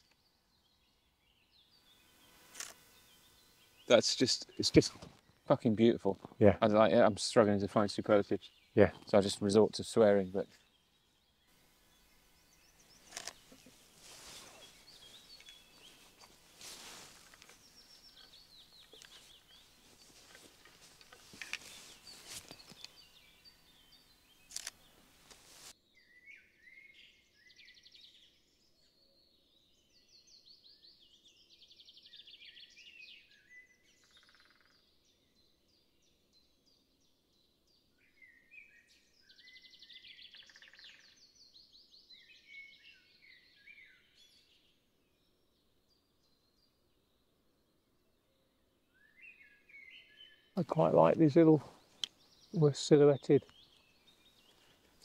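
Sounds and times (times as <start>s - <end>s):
songbirds chirping and trilling: 0.0s - 55.0s
brief rustle: 2.4s - 3.0s, 13.0s - 23.0s, 24.5s - 25.7s.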